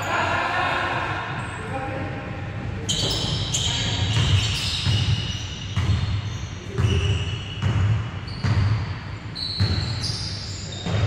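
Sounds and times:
sneaker squeaks: 0:02.8 - 0:11.0.

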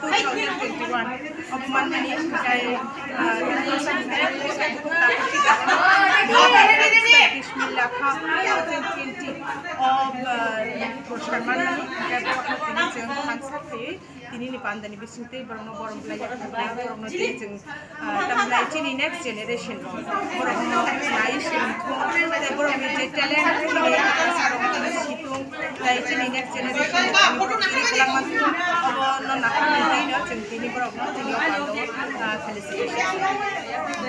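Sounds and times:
people chattering: 0:00.0 - 0:34.0
woman speaking: 0:00.0 - 0:34.0
woman talking: 0:00.0 - 0:34.0.

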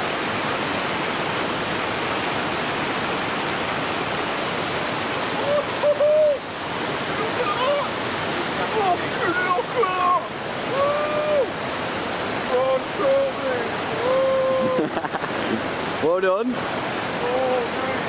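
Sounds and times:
river water rushing over rocks: 0:00.0 - 0:18.0
men's wordless voice sounds: 0:05.3 - 0:18.0.

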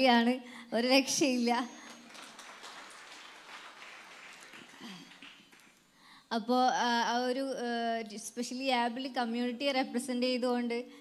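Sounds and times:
faint audience applause: 0:01.8 - 0:05.9.

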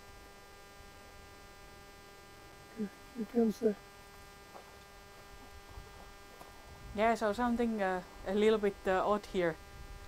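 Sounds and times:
faint steady hum: 0:00.0 - 0:10.0
wind rumble on microphone: 0:05.3 - 0:10.0.

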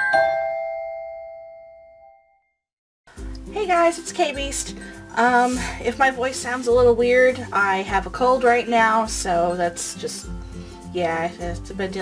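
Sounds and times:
bell-like mallet percussion chord: 0:00.0 - 0:02.3.

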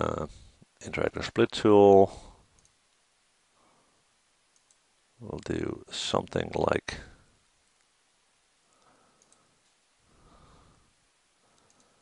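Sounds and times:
man speaking: 0:00.0 - 0:02.3, 0:05.2 - 0:07.2
computer mouse clicks: 0:02.6 - 0:02.8, 0:04.5 - 0:05.5, 0:08.8 - 0:09.8, 0:11.5 - 0:12.0.

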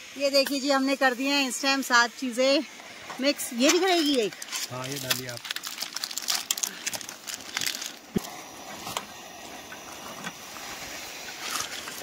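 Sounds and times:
gas stove hissing: 0:00.0 - 0:12.0.

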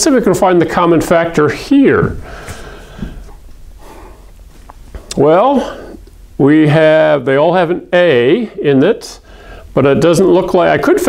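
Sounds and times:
man breathing out: 0:02.2 - 0:04.3, 0:09.3 - 0:09.7.

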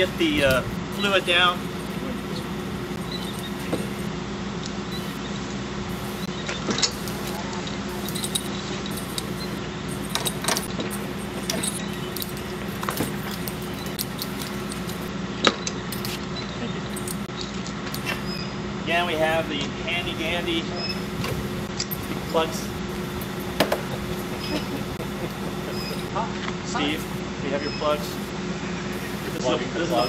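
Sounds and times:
pump humming: 0:00.0 - 0:04.1, 0:05.9 - 0:06.3, 0:06.9 - 0:15.1, 0:20.0 - 0:26.1, 0:29.0 - 0:29.4.

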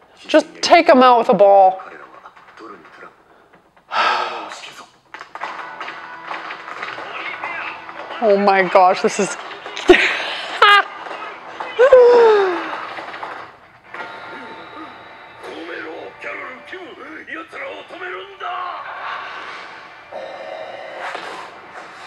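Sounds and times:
background music: 0:00.0 - 0:22.0.

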